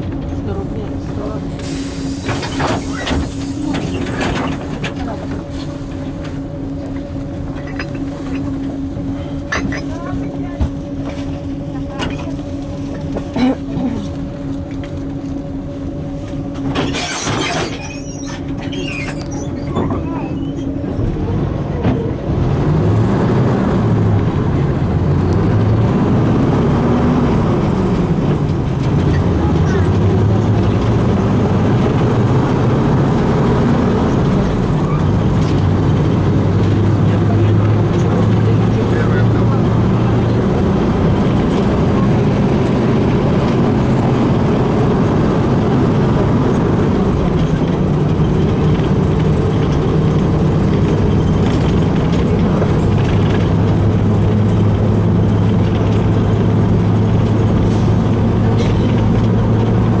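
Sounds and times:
bus engine running: 0:00.0 - 1:00.0
road and body rattle: 0:00.0 - 1:00.0.

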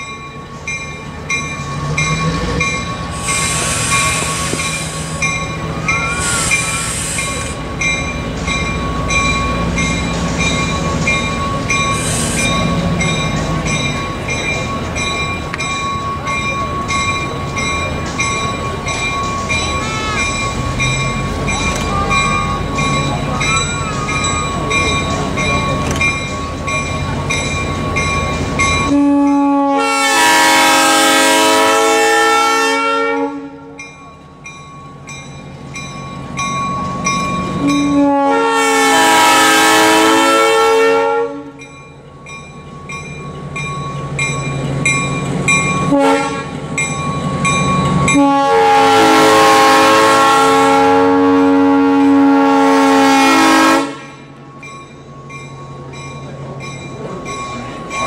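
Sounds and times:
bell ringing: 0:00.0 - 0:29.5, 0:33.8 - 0:38.1, 0:41.6 - 0:46.1, 0:46.7 - 0:48.2, 0:54.0 - 0:58.0
locomotive air horn blasts: 0:19.8 - 0:20.4, 0:28.9 - 0:33.8, 0:37.6 - 0:41.6, 0:45.9 - 0:46.6, 0:48.1 - 0:54.2.

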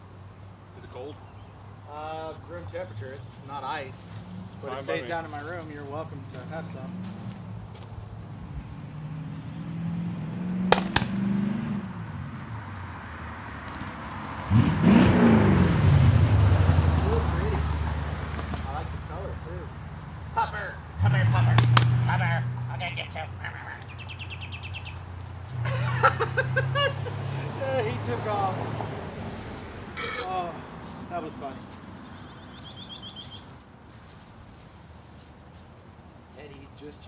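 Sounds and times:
cars passing on road: 0:00.0 - 0:37.0.

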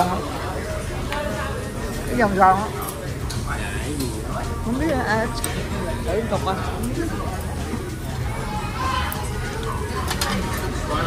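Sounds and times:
diners chattering: 0:00.0 - 0:11.0.

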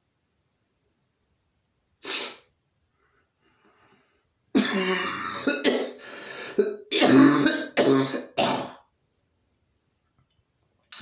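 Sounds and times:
faint breathing: 0:02.9 - 0:04.4, 0:06.0 - 0:06.6
man coughing: 0:04.6 - 0:06.0, 0:06.6 - 0:08.8.

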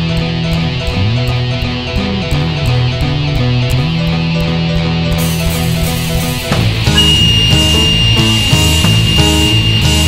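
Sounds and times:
metal band playing: 0:00.0 - 0:10.0
high flute note: 0:06.9 - 0:10.0.

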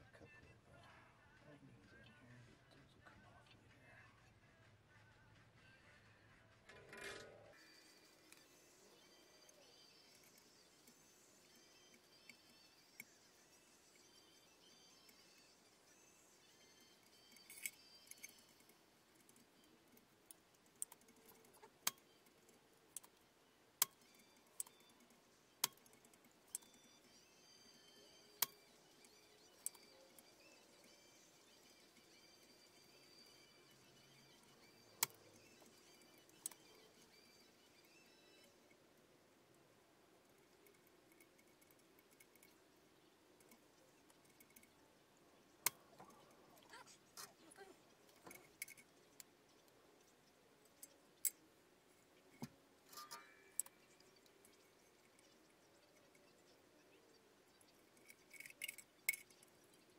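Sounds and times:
metallic clicks of soldering tools: 0:16.5 - 0:27.2, 0:27.8 - 0:39.0, 0:40.2 - 0:42.7, 0:43.3 - 0:44.8, 0:47.9 - 0:56.6, 0:57.5 - 0:59.9.

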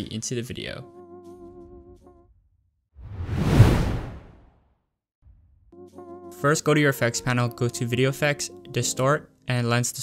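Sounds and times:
whoosh with deep rumble: 0:03.0 - 0:04.5.

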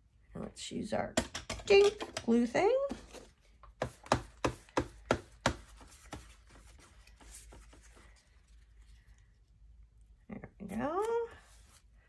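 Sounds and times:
paper rustling: 0:05.6 - 0:09.3.

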